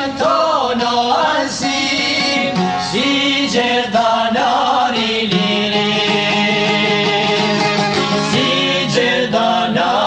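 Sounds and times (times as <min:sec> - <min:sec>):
men singing together: 0:00.0 - 0:10.0
instrumental backing: 0:01.8 - 0:04.2, 0:05.0 - 0:09.9.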